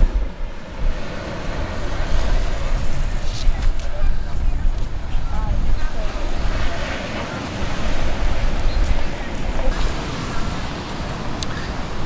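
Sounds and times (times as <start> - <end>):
surf washing onto beach: 0.0 - 12.0
wind rumbling on microphone: 0.0 - 12.0
faint voices: 1.7 - 12.0.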